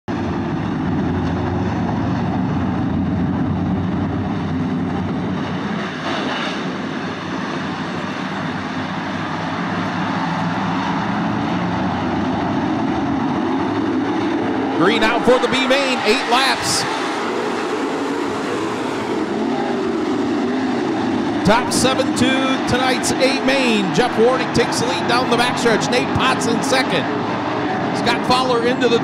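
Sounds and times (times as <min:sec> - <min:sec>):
race car engines droning: 0:00.1 - 0:29.0.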